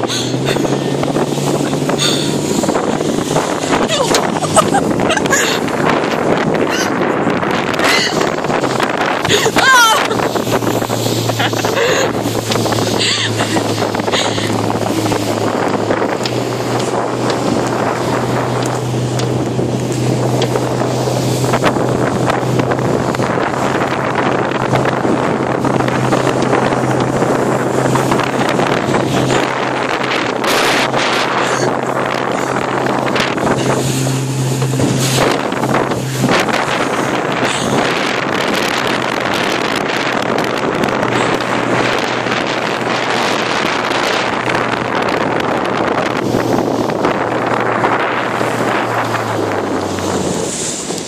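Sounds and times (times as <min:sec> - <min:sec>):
motorboat engine drone: 0:00.0 - 0:51.0
water rushing past hull: 0:00.0 - 0:51.0
wind buffeting microphone: 0:00.0 - 0:51.0.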